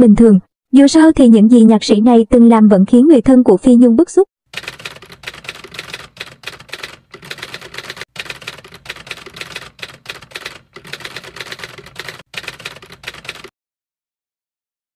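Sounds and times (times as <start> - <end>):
rapid typewriter key clicks: 4.5 - 13.5.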